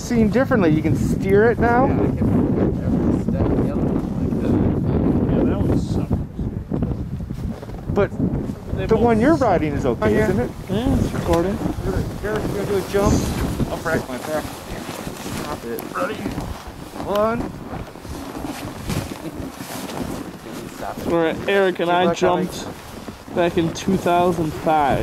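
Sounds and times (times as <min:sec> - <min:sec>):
wind buffeting microphone: 0:00.0 - 0:25.0
faint voices: 0:08.7 - 0:17.5
rustle of padded suits grappling: 0:11.0 - 0:24.9.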